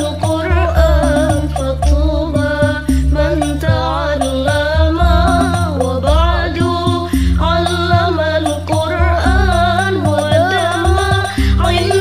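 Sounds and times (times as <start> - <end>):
backing track of bass and percussion: 0.0 - 12.0
woman singing devotional song: 0.0 - 12.0.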